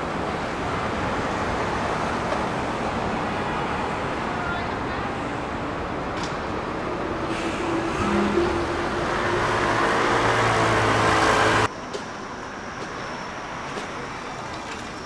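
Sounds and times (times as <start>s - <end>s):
street traffic noise: 0.0s - 15.0s.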